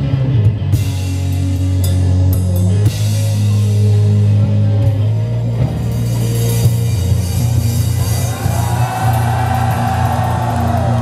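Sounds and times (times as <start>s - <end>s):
drum kit with cymbals: 0.0s - 11.0s
electric bass: 0.0s - 11.0s.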